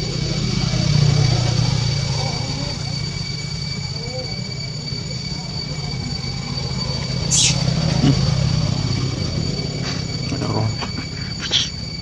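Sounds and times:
engine-like rumble: 0.0 - 12.0
thin high whine: 0.0 - 12.0.

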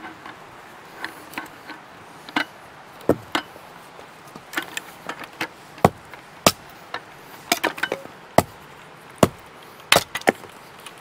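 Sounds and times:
firewood chopping knocks: 3.1 - 3.5, 5.8 - 6.7, 7.5 - 8.6, 9.2 - 10.4.

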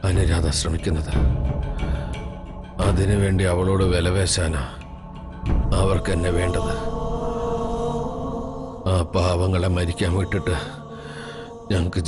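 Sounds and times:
man speaking: 2.8 - 4.8, 5.6 - 6.9, 8.9 - 10.9, 11.6 - 12.0.

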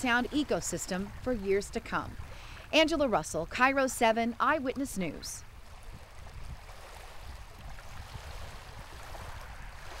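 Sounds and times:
small waves lapping: 0.0 - 10.0.

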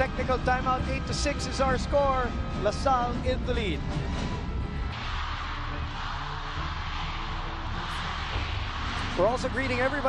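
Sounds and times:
crowd din in arena: 0.0 - 10.0.

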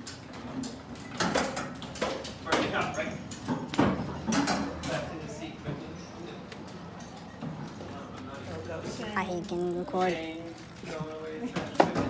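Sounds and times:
children's voices: 9.1 - 10.3.

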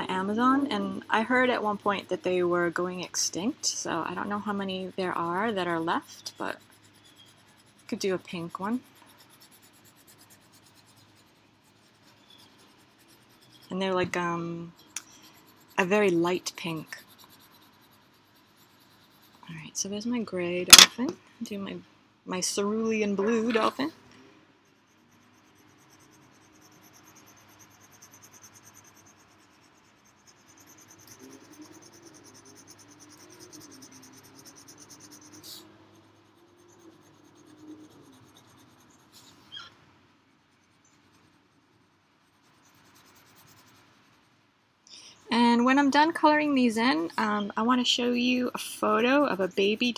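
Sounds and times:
pencil scratching on paper: 0.0 - 13.8, 14.7 - 19.5, 24.6 - 39.7, 40.4 - 44.3, 46.2 - 49.9.

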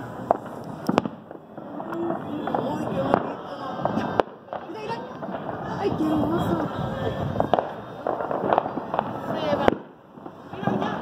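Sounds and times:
firecrackers crackling: 0.0 - 11.0
firework bangs: 0.0 - 11.0.

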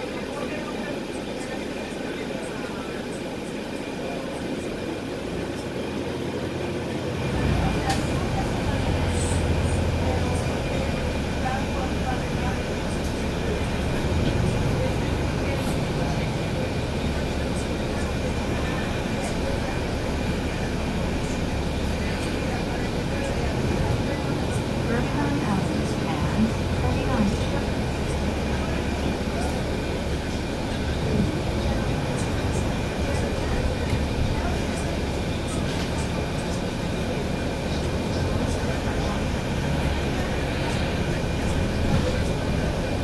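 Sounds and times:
bus engine running: 0.0 - 43.0
road rumble: 0.0 - 43.0.

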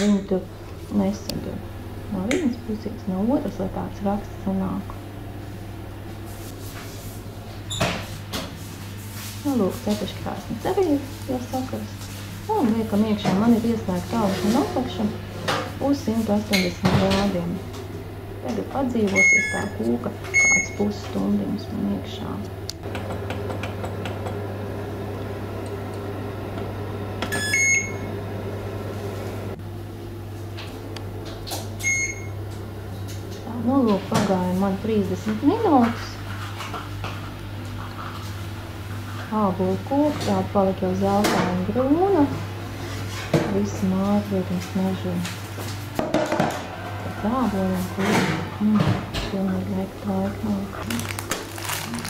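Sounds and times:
steady low hum: 0.0 - 52.0
short high beeps: 19.2 - 19.8.

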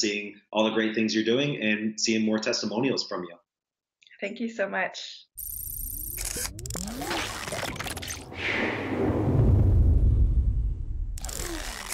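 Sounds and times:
glitchy static crackle: 5.4 - 8.3, 11.2 - 11.9
low rumble: 7.8 - 11.4.

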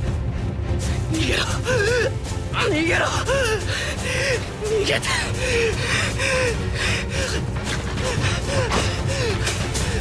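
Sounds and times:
young man panting and gasping: 5.3 - 10.0.

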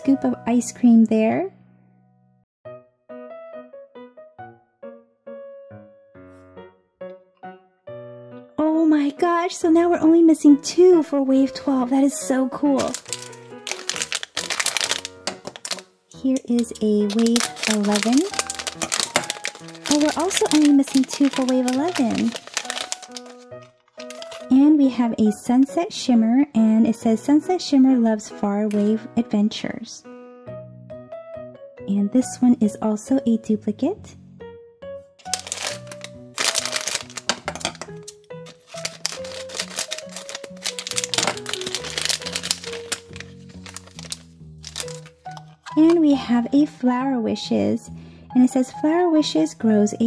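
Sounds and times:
background music: 0.0 - 50.0
foil bag crinkling: 12.8 - 15.8, 16.5 - 24.6, 35.2 - 46.0.

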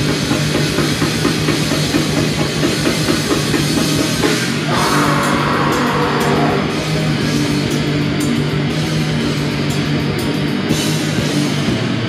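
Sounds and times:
bass guitar: 0.0 - 12.0
distorted guitar: 0.0 - 12.0
fast bass drum strokes: 0.0 - 12.0.

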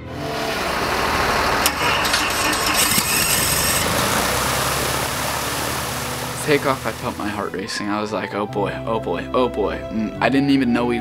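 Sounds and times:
light aircraft engine droning: 0.0 - 7.8.

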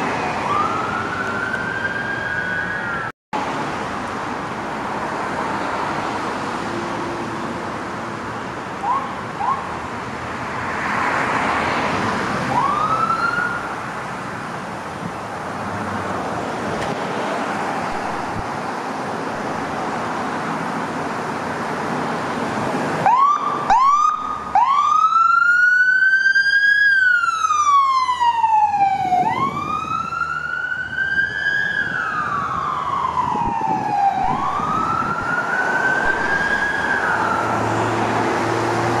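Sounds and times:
ambulance siren: 0.0 - 3.2, 8.8 - 9.7, 12.5 - 13.8, 23.0 - 39.0
passing traffic: 0.0 - 39.0.

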